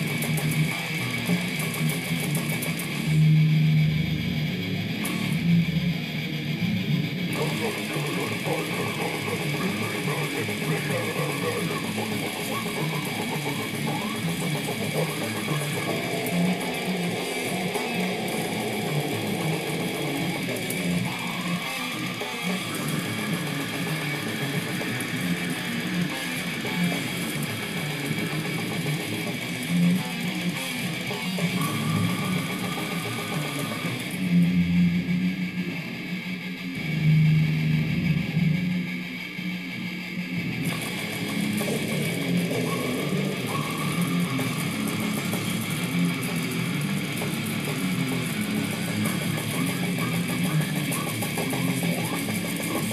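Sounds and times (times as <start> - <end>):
electric guitar metal riff: 0.0 - 52.9
metal song through laptop speakers: 0.0 - 52.9.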